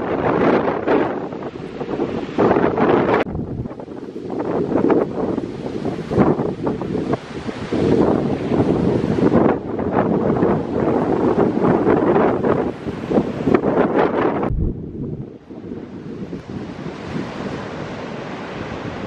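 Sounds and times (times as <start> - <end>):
surf breaking on beach: 0.0 - 19.0
wind buffeting microphone: 0.0 - 19.0.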